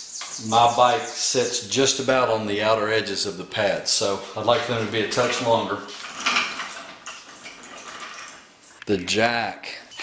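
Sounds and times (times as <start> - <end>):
metal jack rattling and clinking: 5.0 - 8.5.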